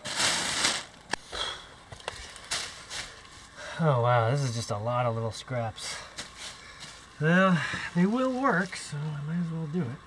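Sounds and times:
plastic bag rustling: 0:00.0 - 0:01.2, 0:02.0 - 0:03.6, 0:07.9 - 0:09.0.

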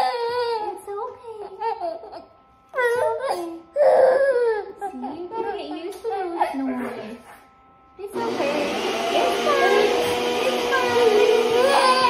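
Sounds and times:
infant crying: 0:02.8 - 0:05.2, 0:11.1 - 0:12.0.

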